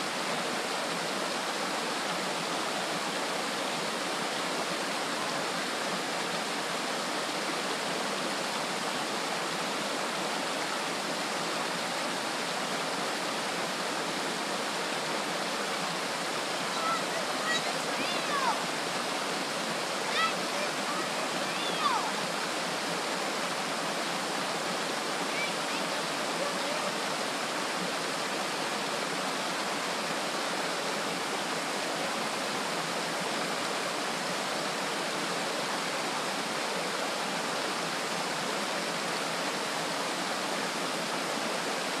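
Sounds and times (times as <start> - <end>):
waterfall rushing: 0.0 - 42.0.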